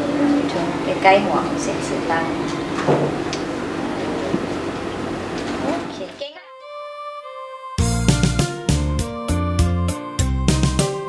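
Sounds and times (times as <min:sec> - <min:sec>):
noisy classroom room tone: 0:00.0 - 0:06.3.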